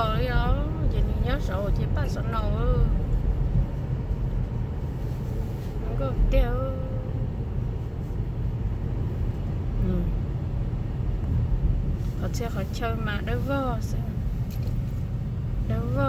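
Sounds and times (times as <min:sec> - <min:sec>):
car cabin rumble: 0:00.0 - 0:16.0.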